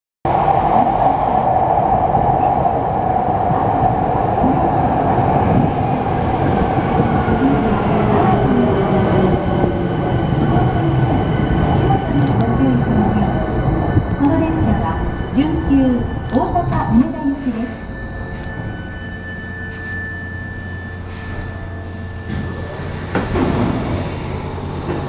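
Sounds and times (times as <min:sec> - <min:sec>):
electric train wheel rumble: 0:00.3 - 0:25.0
train motor whine: 0:16.2 - 0:25.0.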